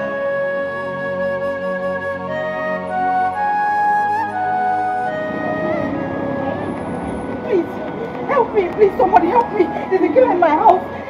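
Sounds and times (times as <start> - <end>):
background music held tones: 0.0 - 11.0
noisy background: 3.2 - 11.0.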